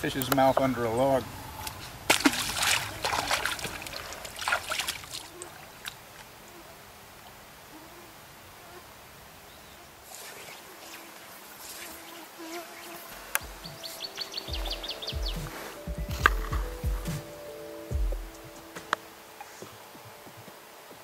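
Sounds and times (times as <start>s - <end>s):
insect buzzing: 7.6s - 19.7s
low thumps: 13.3s - 19.0s
background music with held notes: 13.3s - 21.0s.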